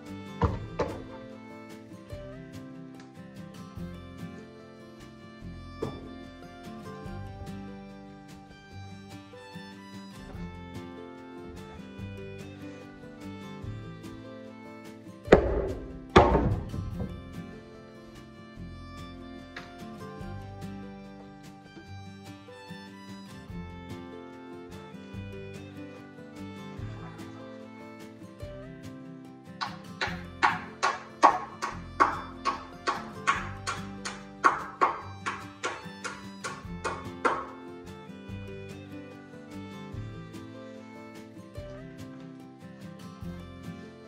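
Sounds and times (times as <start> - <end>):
background music: 0.0 - 44.0
hammer blows on wood: 29.6 - 37.6.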